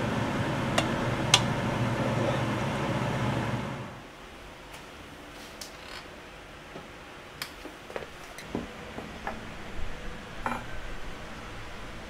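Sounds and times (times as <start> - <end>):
low hum from stove: 0.0 - 4.1, 8.3 - 12.0.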